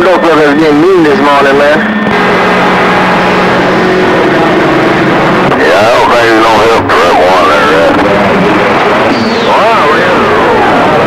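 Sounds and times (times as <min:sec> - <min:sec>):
low hum: 0:00.0 - 0:11.0
radio static hiss: 0:00.0 - 0:11.0.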